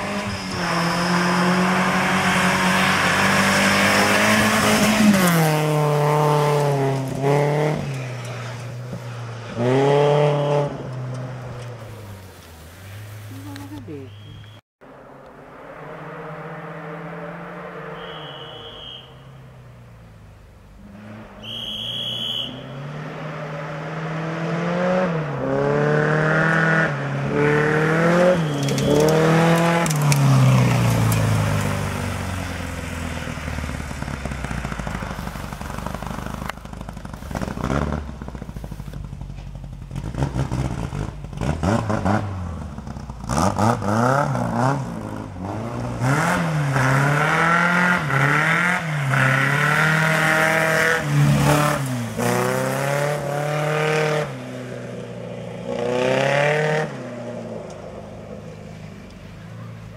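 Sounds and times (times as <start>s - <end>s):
car engine revving: 0.0s - 12.0s, 19.6s - 59.4s
short high tone: 18.0s - 19.2s.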